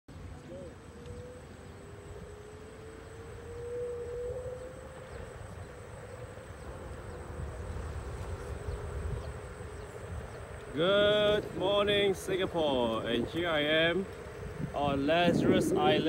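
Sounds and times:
wind and tyres on asphalt: 0.1s - 16.0s
electric scooter motor whining: 0.2s - 16.0s.

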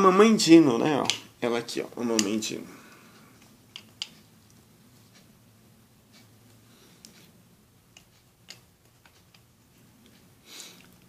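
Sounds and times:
low room hum: 0.0s - 11.0s
plastic toy clicks and rubs: 7.9s - 10.2s.

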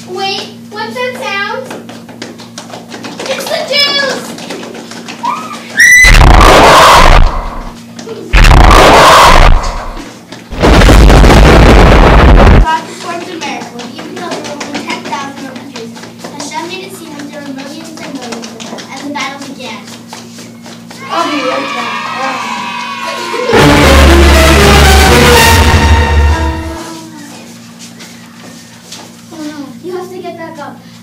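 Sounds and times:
loud distorted noise bursts: 6.0s - 12.7s, 23.5s - 26.9s.

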